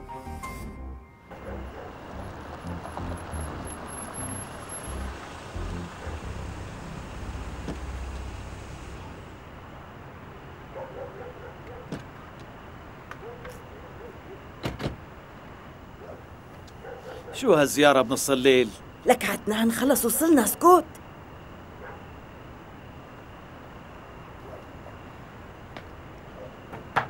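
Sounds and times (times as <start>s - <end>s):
car engine running: 1.3s - 10.1s
car door shutting: 7.4s - 9.0s.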